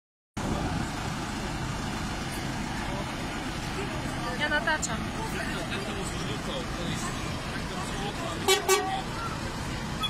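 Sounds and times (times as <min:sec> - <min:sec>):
truck engines idling: 0:00.4 - 0:10.0.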